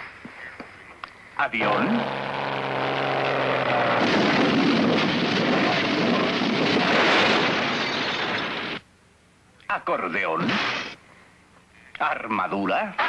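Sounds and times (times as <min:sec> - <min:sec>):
cartoon propeller airplane drone: 0:01.6 - 0:06.4
loud rush of noise: 0:01.6 - 0:08.8.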